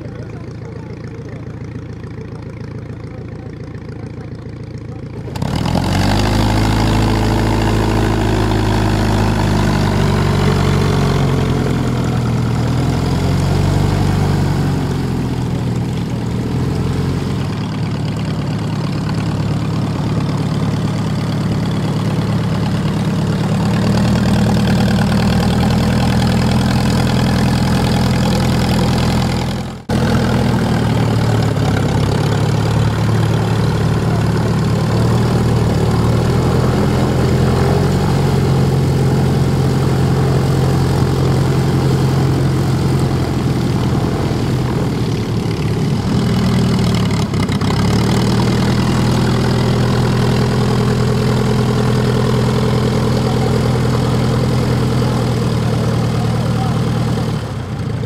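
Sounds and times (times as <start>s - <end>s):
propeller plane engine idling: 0.0s - 58.0s.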